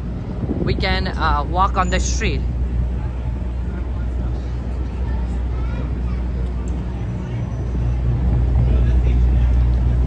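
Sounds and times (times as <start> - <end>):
low street rumble: 0.0 - 10.0
faint voices: 1.6 - 10.0.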